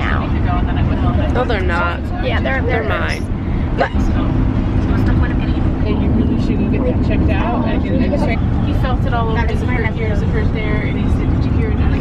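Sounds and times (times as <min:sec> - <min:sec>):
car road rumble inside cabin: 0:00.0 - 0:12.0.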